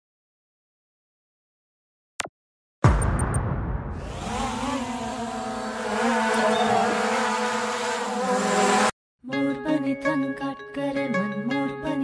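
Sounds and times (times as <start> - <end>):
drone propellers whirring: 3.9 - 8.9.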